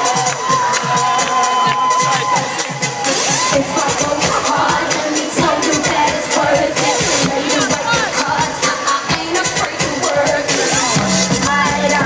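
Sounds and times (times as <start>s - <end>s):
crowd screaming and cheering: 0.0s - 12.0s
heavy bass: 0.0s - 12.0s
live pop band playing: 0.0s - 12.0s.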